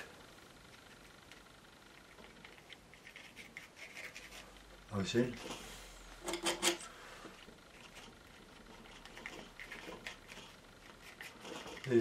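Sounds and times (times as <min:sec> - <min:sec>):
palette knife scraping paint: 0:02.0 - 0:04.6, 0:07.7 - 0:12.0.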